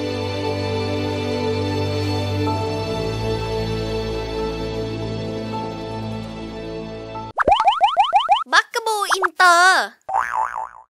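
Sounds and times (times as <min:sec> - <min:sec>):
background music: 0:00.0 - 0:07.4
squeaky cartoon voice chatter: 0:08.5 - 0:09.9.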